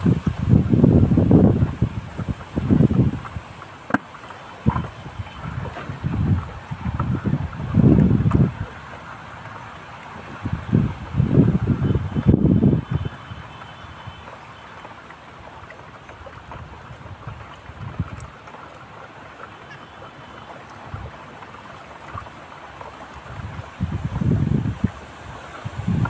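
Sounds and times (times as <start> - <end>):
wind buffeting microphone: 0.0 - 3.7, 4.5 - 14.4, 15.5 - 19.4, 20.6 - 26.0.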